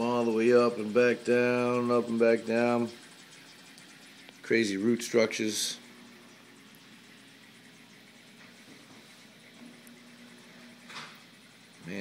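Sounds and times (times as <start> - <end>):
aquarium filter water trickling: 0.0 - 12.0.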